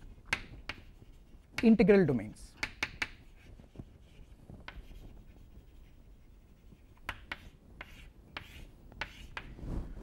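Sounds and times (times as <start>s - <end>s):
chalk scratching on chalkboard: 0.3s - 1.8s, 2.6s - 9.6s
sharp chalk strokes: 2.7s - 9.6s.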